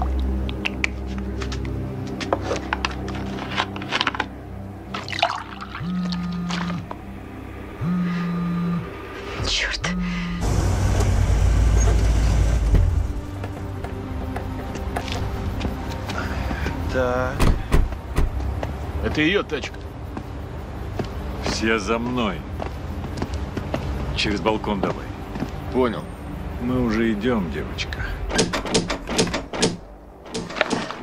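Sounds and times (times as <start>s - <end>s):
car engines rumbling: 6.2s - 28.4s
phone vibrating on tabletop: 7.8s - 8.8s.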